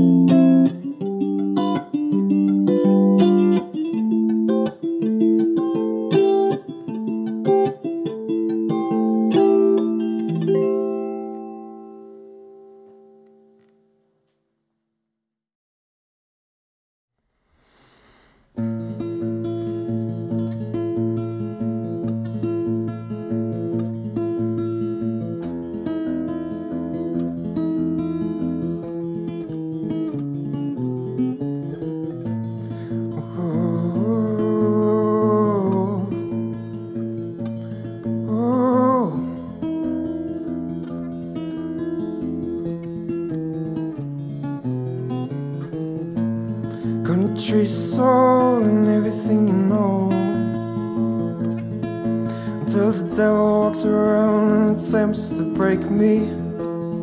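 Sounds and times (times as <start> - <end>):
acoustic guitar: 0.0 - 14.4, 17.5 - 57.0.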